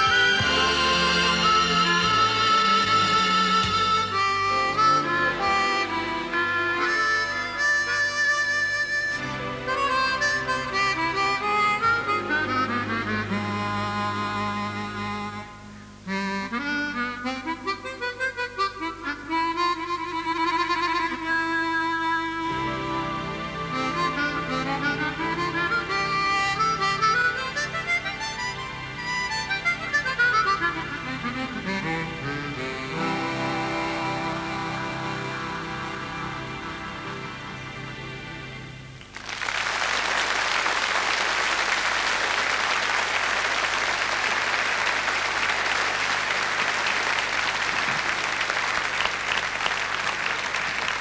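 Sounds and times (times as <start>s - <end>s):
harmonica playing slow melody: 0.0s - 39.0s
low backing accompaniment: 0.0s - 51.0s.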